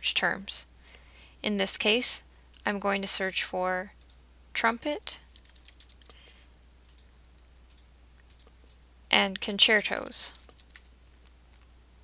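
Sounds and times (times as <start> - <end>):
computer keyboard typing: 5.3 - 6.2, 6.8 - 7.1, 7.7 - 8.5, 9.9 - 10.9.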